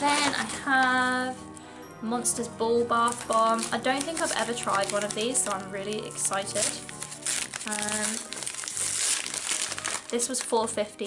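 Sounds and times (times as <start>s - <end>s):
paper bag rustling: 0.0s - 1.5s, 2.3s - 10.6s.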